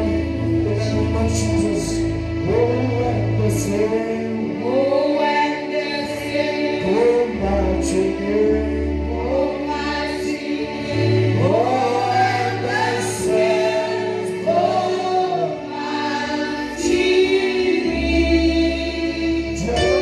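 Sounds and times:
man singing lead: 0:00.0 - 0:05.7, 0:06.5 - 0:09.8, 0:16.7 - 0:20.0
women singing backing vocals: 0:02.4 - 0:20.0
low instrumental notes: 0:11.4 - 0:20.0.

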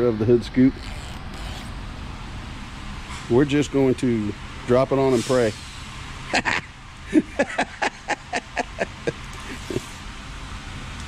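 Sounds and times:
man laughing: 0:06.3 - 0:09.9.

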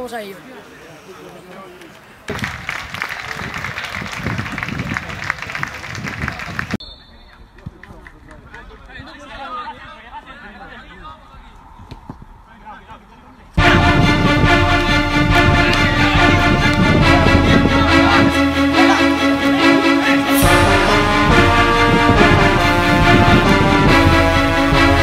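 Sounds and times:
loud rushing noise: 0:13.6 - 0:25.0
music: 0:13.6 - 0:25.0.

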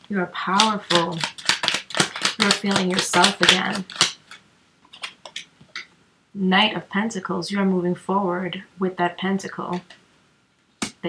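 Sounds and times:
cards clicking and rustling: 0:00.5 - 0:05.9.

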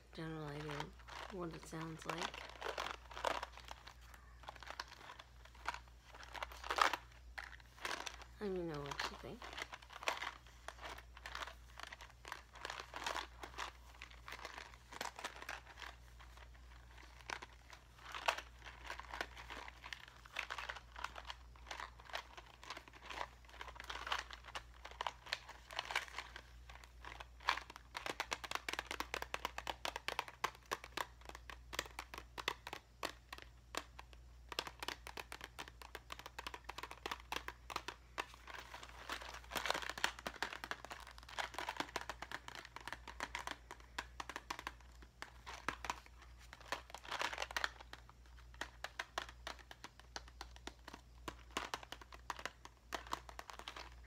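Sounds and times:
plastic package crinkling: 0:00.0 - 0:54.0.

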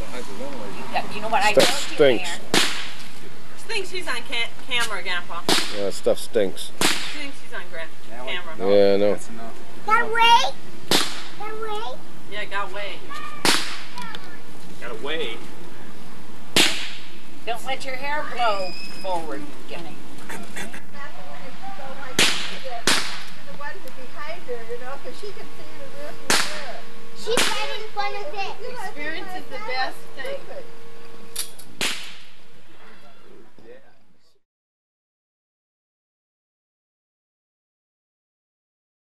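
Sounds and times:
firecracker bang: 0:01.6 - 0:03.0, 0:06.8 - 0:07.4, 0:10.8 - 0:11.4, 0:13.4 - 0:14.0, 0:16.5 - 0:17.2, 0:22.1 - 0:23.5, 0:26.3 - 0:27.9, 0:31.8 - 0:32.4.

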